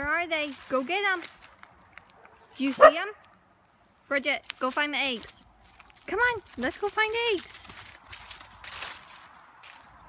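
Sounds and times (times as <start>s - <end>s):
footsteps crunching dry leaves: 0.0s - 3.1s, 3.9s - 10.0s.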